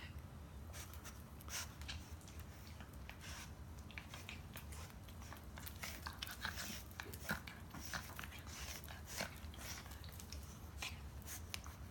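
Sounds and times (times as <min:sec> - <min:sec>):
dogs scuffling and mouthing: 0:00.8 - 0:11.9.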